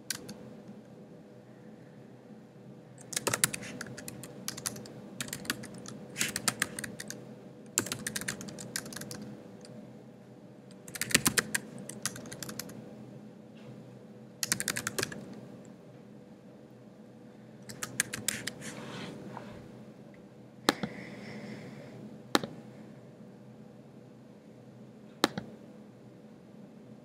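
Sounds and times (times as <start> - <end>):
typing on computer keyboard: 0.0 - 0.4, 3.0 - 7.2, 7.8 - 9.3, 10.7 - 12.8, 14.4 - 15.3, 17.7 - 18.6
faint steady hum: 0.0 - 27.0.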